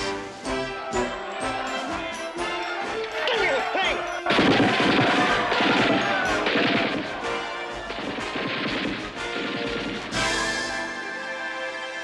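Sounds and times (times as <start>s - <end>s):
rioting crowd: 0.0s - 11.2s
music: 0.0s - 12.0s.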